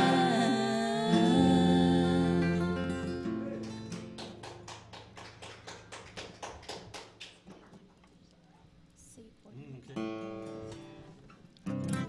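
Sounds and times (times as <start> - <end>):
voices singing gospel chord: 0.0 - 3.6
acoustic guitars: 0.0 - 5.2, 9.8 - 12.0.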